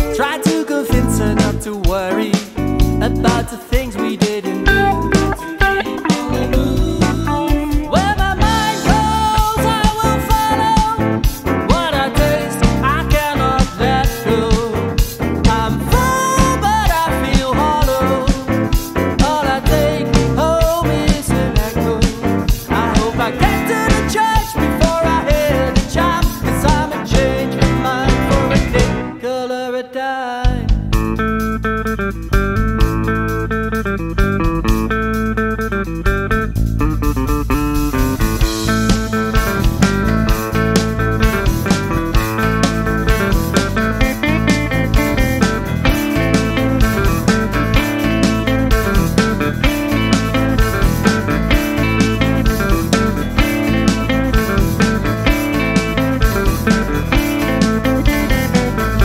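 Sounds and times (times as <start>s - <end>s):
blues-rock band playing: 0.0s - 29.2s, 30.7s - 59.0s
bass guitar: 0.0s - 29.3s, 30.4s - 59.0s
person singing: 0.0s - 30.8s, 43.1s - 59.0s
electric guitar: 0.0s - 59.0s
drum hits: 4.7s - 9.1s, 37.0s - 59.0s.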